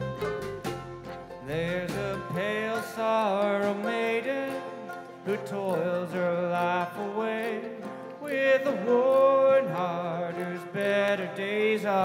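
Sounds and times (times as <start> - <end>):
acoustic guitar and plucked strings: 0.0 - 12.0.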